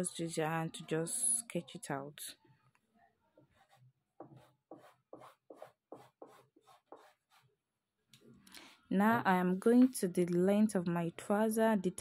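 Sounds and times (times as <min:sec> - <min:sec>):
chalk scratching on fabric: 0:03.5 - 0:07.5.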